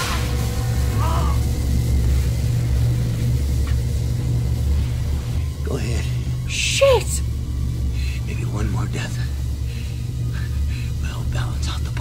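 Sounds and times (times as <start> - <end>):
deep low rumble: 0.0 - 12.0.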